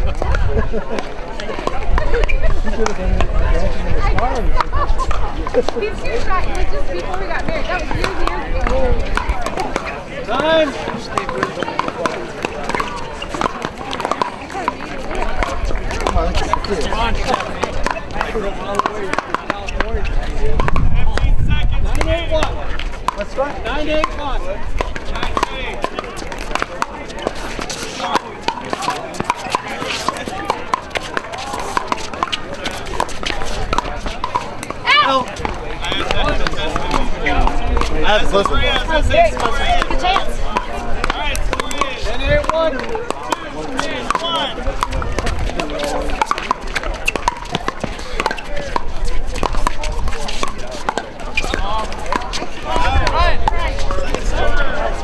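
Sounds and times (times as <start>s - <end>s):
paddles striking balls: 0.0s - 55.0s
voices chattering: 0.0s - 55.0s.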